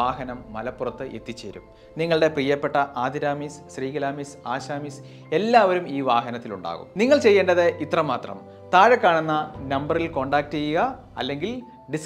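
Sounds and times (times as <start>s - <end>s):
light background music: 0.0s - 12.0s
man speaking: 5.5s - 12.0s.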